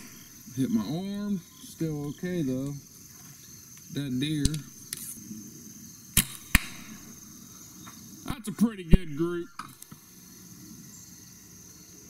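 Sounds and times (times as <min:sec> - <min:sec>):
bow string snap: 0:04.4 - 0:05.1, 0:06.2 - 0:07.0
arrow striking target: 0:06.2 - 0:07.1.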